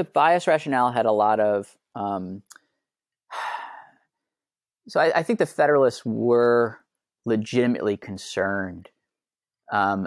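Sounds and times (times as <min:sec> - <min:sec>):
person sighing: 0:03.3 - 0:04.0.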